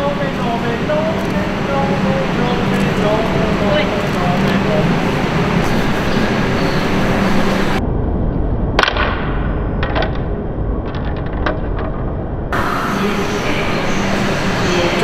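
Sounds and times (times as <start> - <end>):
train rumbling: 0.0 - 7.9, 12.4 - 15.0.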